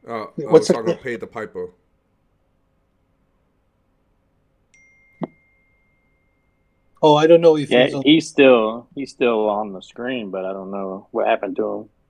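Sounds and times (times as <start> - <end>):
faint high tone: 4.7 - 8.1.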